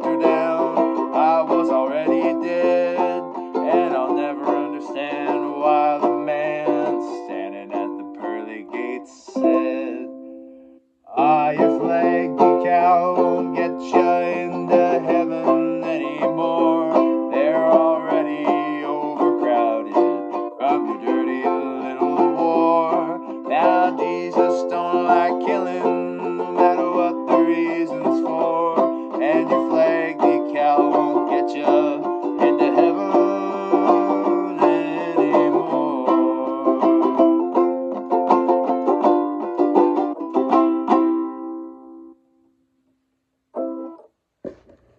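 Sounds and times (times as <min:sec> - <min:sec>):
banjo ukulele strumming: 0:00.0 - 0:42.2, 0:43.6 - 0:44.9.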